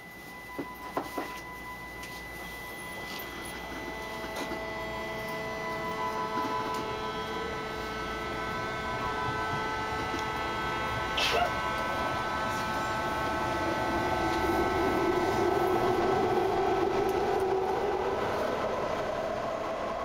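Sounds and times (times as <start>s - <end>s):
high whining tones: 0.0s - 20.0s
train rumbling in tunnel: 0.0s - 20.0s.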